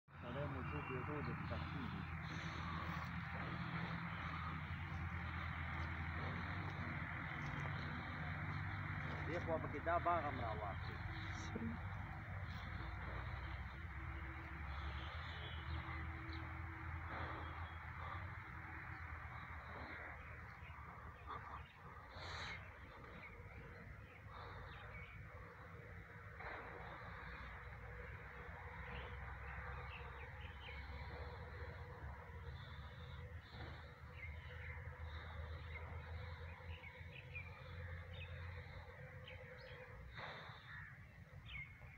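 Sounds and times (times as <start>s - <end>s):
steady low hum: 0.1s - 41.9s.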